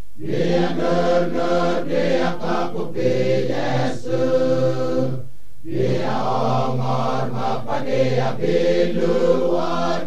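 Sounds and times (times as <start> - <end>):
male choir singing: 0.2 - 10.0.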